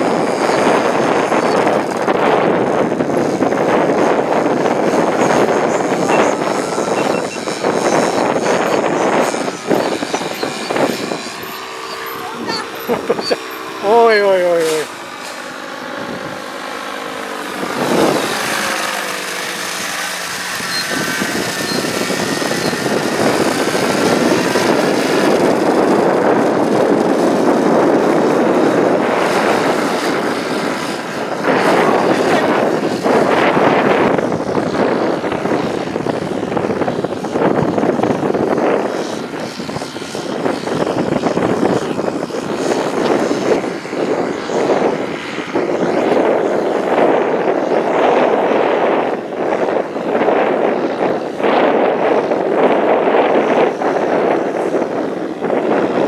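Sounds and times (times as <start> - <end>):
paramotor engine drone: 0.0 - 56.0.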